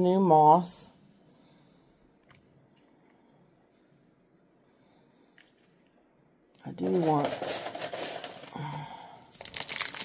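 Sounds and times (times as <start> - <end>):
dry moss rustling and crackling: 9.3 - 10.0.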